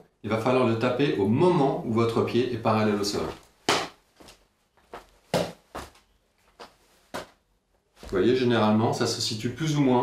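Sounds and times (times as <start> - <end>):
footbag hits on a sneaker: 5.3 - 5.9.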